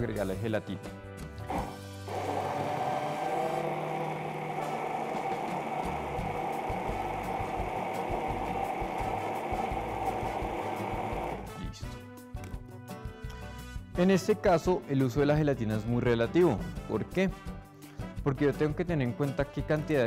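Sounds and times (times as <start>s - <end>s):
immersion blender running: 1.4s - 11.6s.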